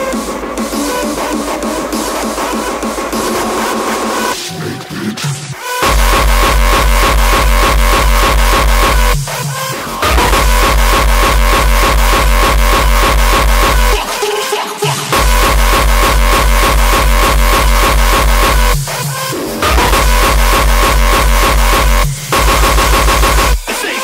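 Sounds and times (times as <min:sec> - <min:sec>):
sustained high synth line: 0:05.8 - 0:09.2, 0:10.0 - 0:14.1, 0:15.2 - 0:18.9, 0:19.6 - 0:23.6
fast pounding kick drum: 0:05.8 - 0:14.3, 0:15.0 - 0:23.8.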